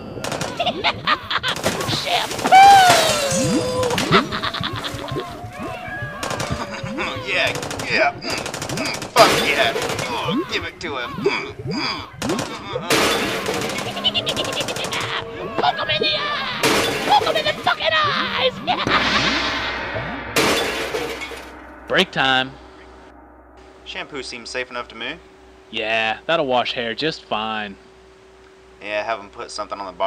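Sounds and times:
man laughing: 0.4s - 19.6s
glass shattering crash: 1.6s - 4.3s, 18.9s - 21.6s
rapid gunshot-like cracks: 7.4s - 10.3s.

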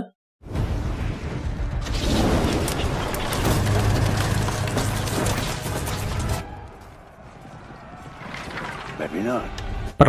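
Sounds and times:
film battle soundtrack: 0.4s - 10.0s.

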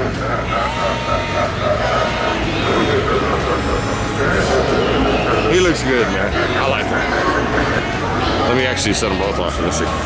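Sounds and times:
eerie sound effects: 0.0s - 10.0s
store background noise: 0.0s - 10.0s.

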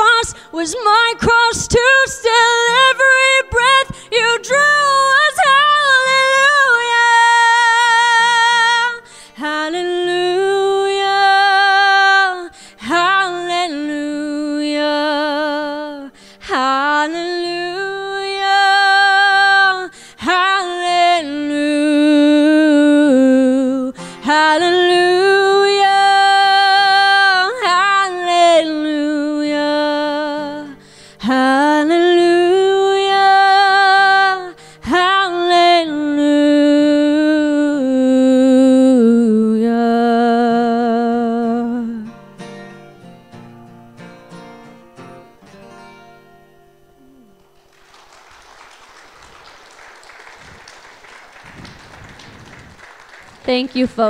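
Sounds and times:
woman singing with vibrato: 0.0s - 42.1s
acoustic guitar: 0.0s - 54.0s.

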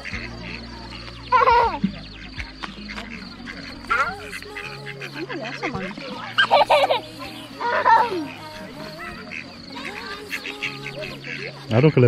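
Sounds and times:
ducks quacking: 0.0s - 12.0s.

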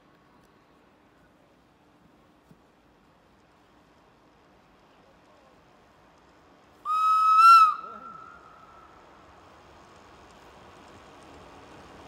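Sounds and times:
train warning whistle: 6.9s - 8.3s.

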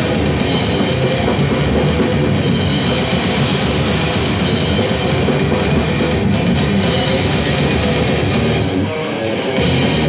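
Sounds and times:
death metal band playing live: 0.0s - 10.0s.

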